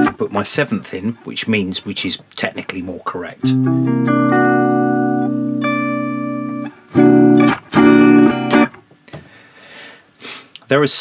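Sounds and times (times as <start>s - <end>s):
electric guitar chord strummed: 3.4s - 8.8s.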